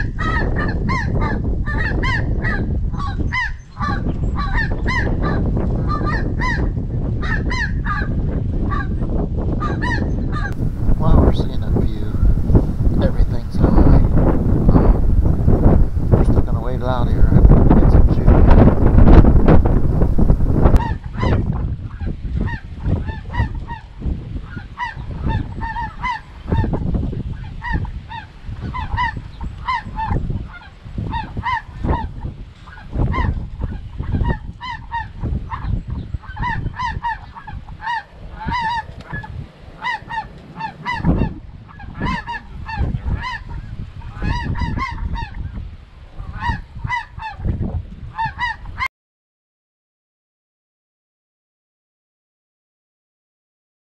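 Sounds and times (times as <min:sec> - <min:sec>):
wind rumble on microphone: 0:00.0 - 0:48.9
geese honking: 0:10.6 - 0:21.4, 0:36.2 - 0:45.4, 0:48.2 - 0:48.9.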